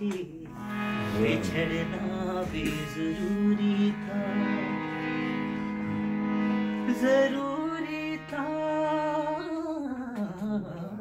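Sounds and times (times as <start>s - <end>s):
harmonium accompaniment: 0.0s - 11.0s.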